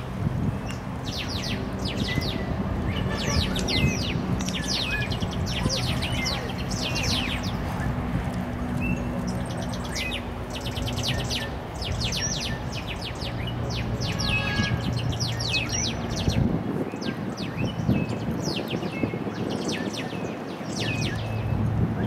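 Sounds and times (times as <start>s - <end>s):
birds chirping: 0.0s - 22.0s.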